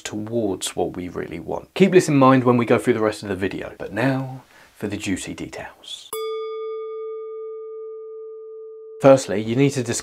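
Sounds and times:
struck bell-like chime: 0:06.1 - 0:09.8.

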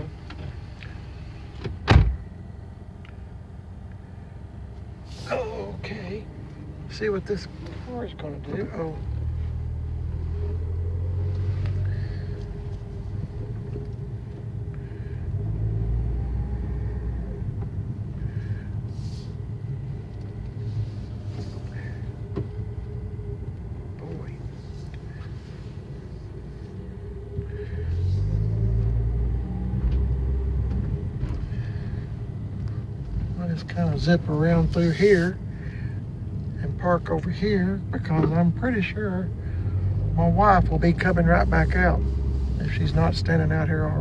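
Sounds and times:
car engine and tyre rumble: 0:00.0 - 0:44.0.

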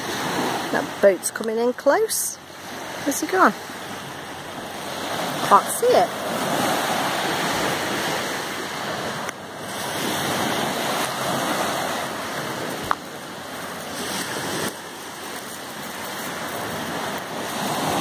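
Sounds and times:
waves washing up shingle beach: 0:00.0 - 0:18.0.

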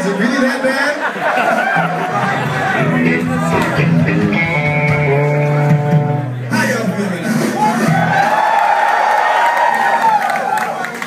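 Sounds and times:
electric guitar and bass chord: 0:02.2 - 0:06.6.

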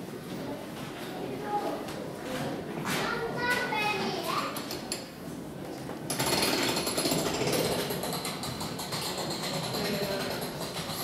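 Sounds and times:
people talking: 0:00.3 - 0:04.6, 0:09.6 - 0:10.6
mechanical rattle with high whine: 0:06.1 - 0:11.0.

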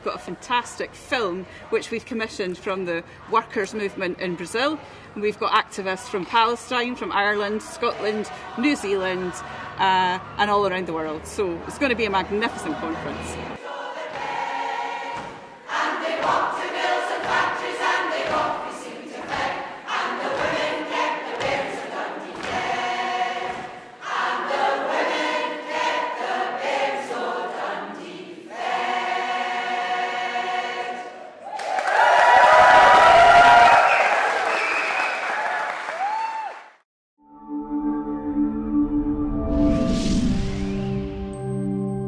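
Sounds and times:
women's choir singing: 0:00.0 - 0:31.5
applause and cheering: 0:31.4 - 0:36.8.

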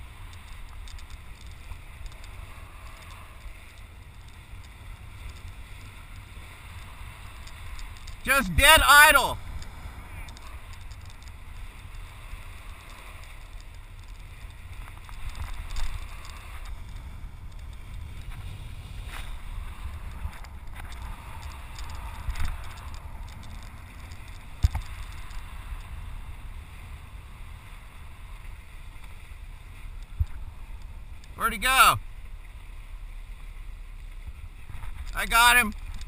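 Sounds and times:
boat engine idling rumble: 0:00.0 - 0:36.0
water noise: 0:00.0 - 0:36.0.

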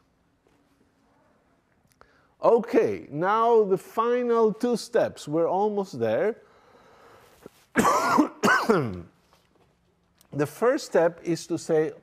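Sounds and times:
man coughing: 0:07.8 - 0:09.1.

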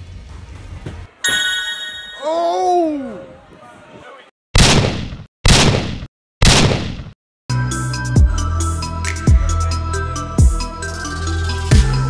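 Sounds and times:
electronic music with heavy bass: 0:07.8 - 0:12.0.

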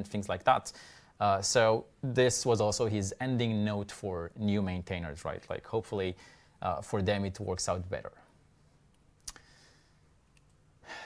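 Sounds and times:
man speaking: 0:00.0 - 0:08.3
soft breath: 0:00.7 - 0:01.2, 0:06.2 - 0:06.6, 0:09.4 - 0:10.2.

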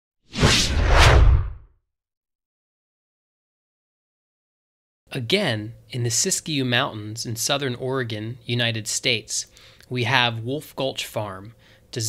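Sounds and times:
whoosh sound effect: 0:00.3 - 0:01.6.

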